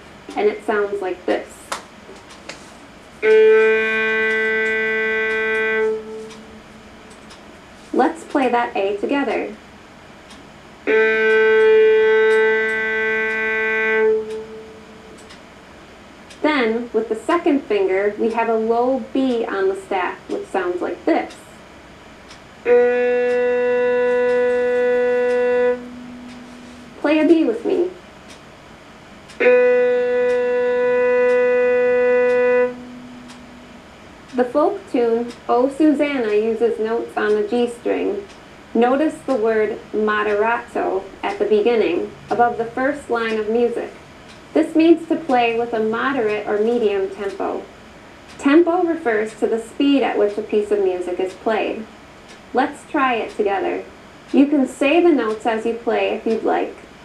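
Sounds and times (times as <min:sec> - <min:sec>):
violin bowed low note: 0:03.2 - 0:07.0, 0:10.8 - 0:15.4, 0:22.6 - 0:28.0, 0:29.3 - 0:35.4.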